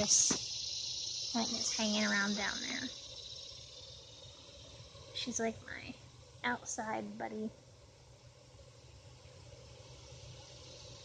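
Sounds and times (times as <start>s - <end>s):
high-pitched hiss: 0.0s - 11.0s.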